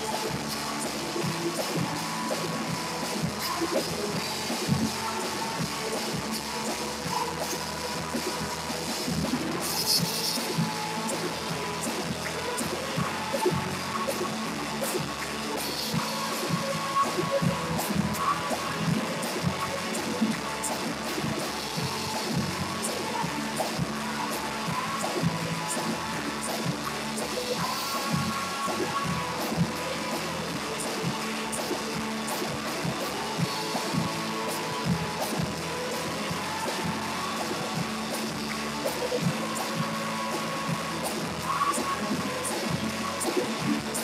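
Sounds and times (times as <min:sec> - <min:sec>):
live worship band music: 0:00.0 - 0:44.0.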